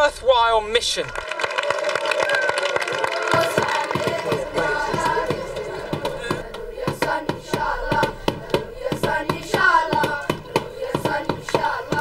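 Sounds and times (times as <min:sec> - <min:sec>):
hands clapping: 0:01.1 - 0:06.2, 0:11.0 - 0:12.0
children singing: 0:03.3 - 0:12.0.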